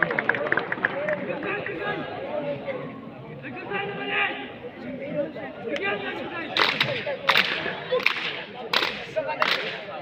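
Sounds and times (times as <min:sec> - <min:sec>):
background chatter: 0:00.0 - 0:10.0
boys slapping in unison: 0:06.5 - 0:10.0.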